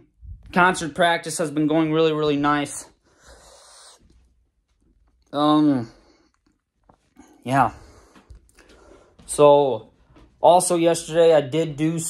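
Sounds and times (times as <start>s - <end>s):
person breathing softly: 3.0s - 4.2s, 7.1s - 9.3s.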